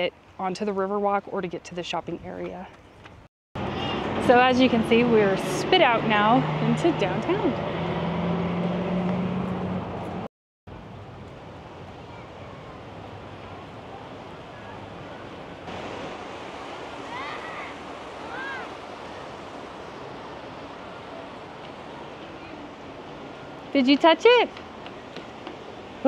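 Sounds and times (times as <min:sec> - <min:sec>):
river rushing over rocks: 0:14.4 - 0:26.0
faint high calls: 0:16.5 - 0:22.8.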